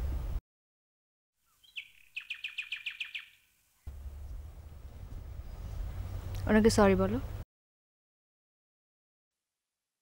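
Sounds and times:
bird chirping: 1.4 - 4.7.

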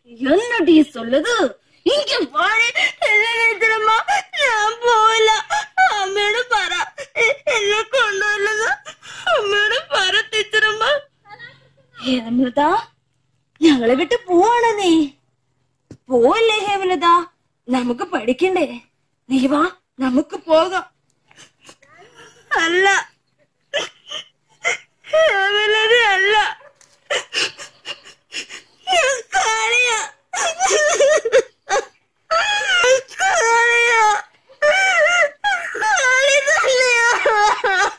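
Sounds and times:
girl wailing and sobbing: 2.0 - 10.6, 21.4 - 37.9.

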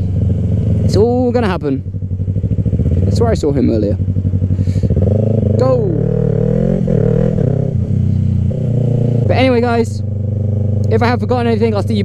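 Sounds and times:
motorcycle engine accelerating: 0.0 - 12.0.

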